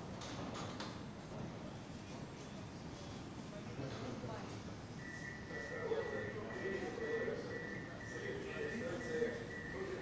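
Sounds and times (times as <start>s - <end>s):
metro platform hum: 0.0s - 10.0s.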